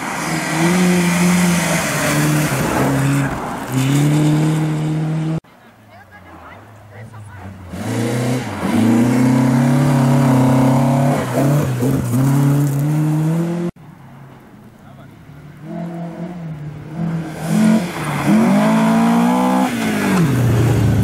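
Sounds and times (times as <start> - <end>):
rally car engine at high revs: 0.0 - 5.4, 7.7 - 13.8, 15.6 - 21.0.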